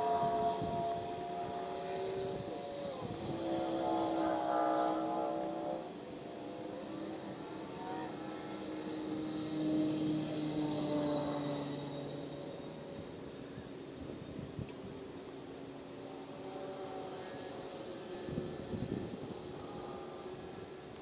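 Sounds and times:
engine humming: 0.0s - 21.0s.

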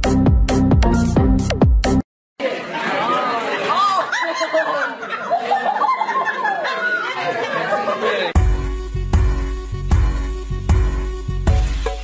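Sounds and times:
woman laughing: 3.8s - 8.4s
voices chattering excitedly: 6.4s - 8.4s.

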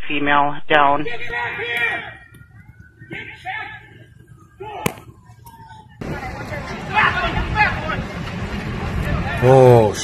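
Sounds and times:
faint voices: 1.1s - 10.0s
sharp crack: 4.8s - 5.1s.

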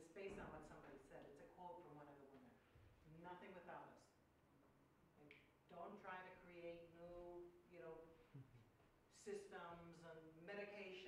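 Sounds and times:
woman speaking: 0.0s - 4.2s, 5.2s - 8.2s, 9.1s - 11.0s.

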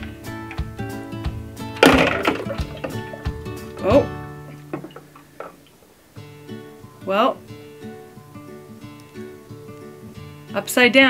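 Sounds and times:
plucked string instrument music: 0.0s - 5.6s.

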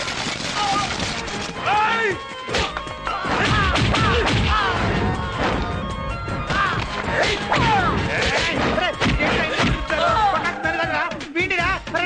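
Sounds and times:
background music: 0.0s - 12.0s
punch and whack hits: 3.3s - 4.6s
people shouting hey: 9.8s - 11.2s.

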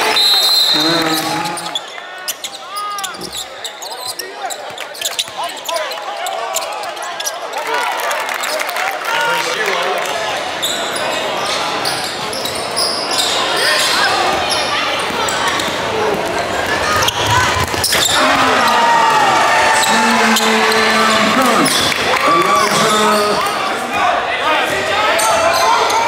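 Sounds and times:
voices calling out: 16.7s - 24.0s.

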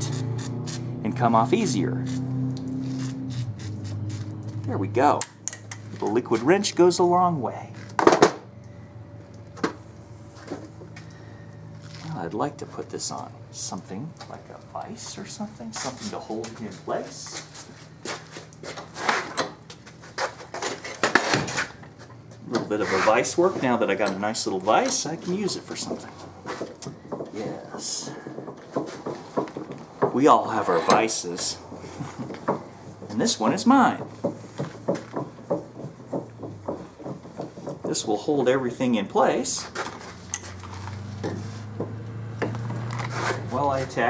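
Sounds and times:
faint steady hum: 4.8s - 20.0s
metal clunks and scrapes in vise: 18.8s - 19.6s.

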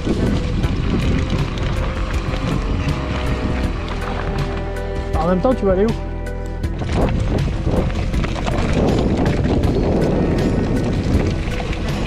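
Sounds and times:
bike rattling and clicking: 0.0s - 5.7s, 6.4s - 12.0s
wind rumble on microphone: 0.0s - 12.0s.

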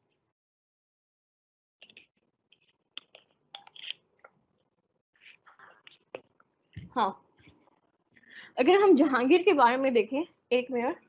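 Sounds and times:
soft breathing: 7.5s - 8.6s.

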